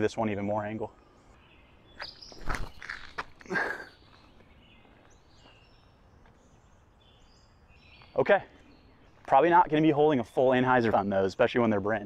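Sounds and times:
faint bird chirps: 0:00.6 - 0:11.1
footsteps on concrete: 0:02.0 - 0:06.5.

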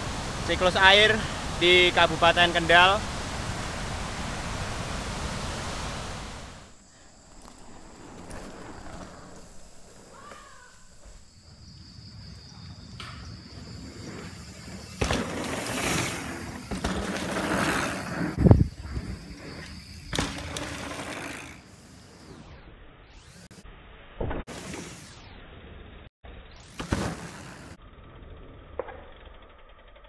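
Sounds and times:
bike tyres crunching on dirt: 0:00.0 - 0:22.1, 0:26.8 - 0:27.8.

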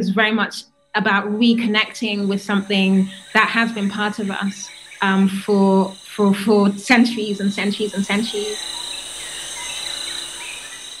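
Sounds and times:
faint gliding insect calls: 0:01.2 - 0:11.0
insects trilling: 0:01.2 - 0:11.0.

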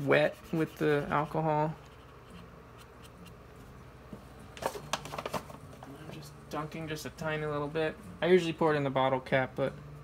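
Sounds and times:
plastic unit handling sounds: 0:04.5 - 0:06.2.

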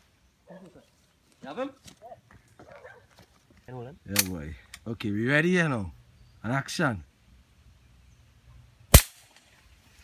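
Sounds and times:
rifle shot: 0:08.9 - 0:09.4.

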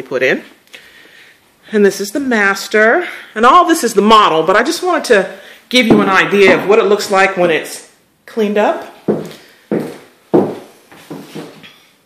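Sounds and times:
footsteps on hard floor: 0:05.8 - 0:07.2, 0:09.0 - 0:11.8.

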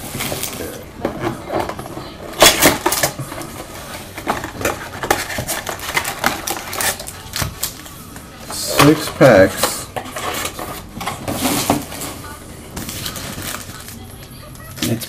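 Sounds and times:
card pack crinkle: 0:04.1 - 0:08.0, 0:12.8 - 0:15.0.

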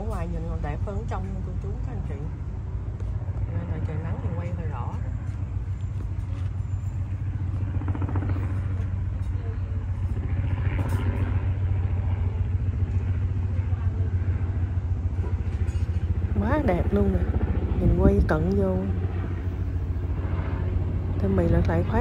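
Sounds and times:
low engine rumble: 0:00.0 - 0:22.0.

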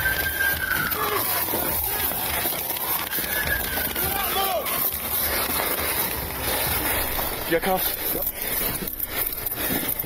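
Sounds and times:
people shouting: 0:00.0 - 0:06.6
camera jostling: 0:00.0 - 0:10.0
footfalls: 0:00.0 - 0:10.0
rustling undergrowth: 0:00.0 - 0:10.0.

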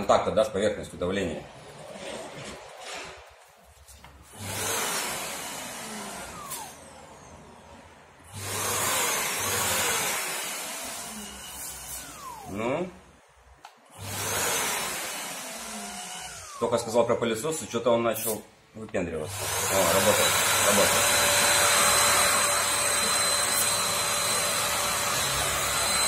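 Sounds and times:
electric sander whining: 0:19.3 - 0:26.0.

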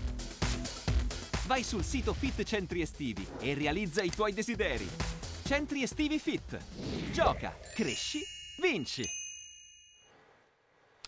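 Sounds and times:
bright high chime: 0:07.6 - 0:10.2.

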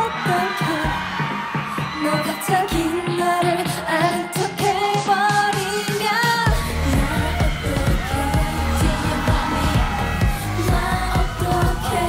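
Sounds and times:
dance-pop backing track: 0:00.0 - 0:12.0
woman singing: 0:00.0 - 0:12.0
heavy bass line: 0:06.5 - 0:12.0.

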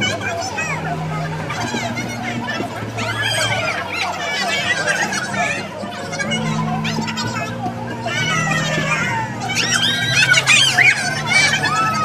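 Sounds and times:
crowd chatter: 0:00.0 - 0:12.0
excited high-pitched voices: 0:00.0 - 0:12.0.

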